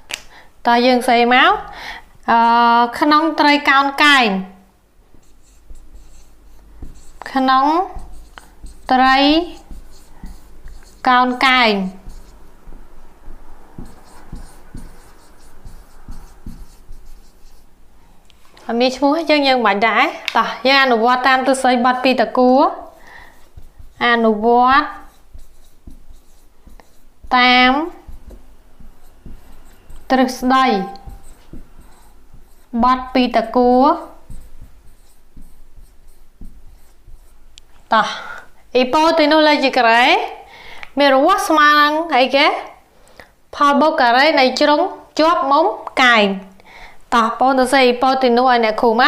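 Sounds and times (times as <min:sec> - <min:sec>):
marker scratching on whiteboard: 0:05.1 - 0:17.8, 0:20.8 - 0:37.9, 0:38.8 - 0:39.4
marker tip tapping: 0:05.2 - 0:07.4, 0:08.0 - 0:11.0, 0:13.7 - 0:17.6, 0:25.0 - 0:30.2.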